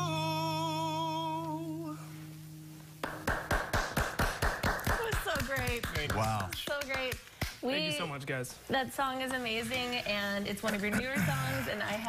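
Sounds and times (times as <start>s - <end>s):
acoustic guitar chord ringing: 0.0s - 4.0s
small group applauding: 3.0s - 7.6s.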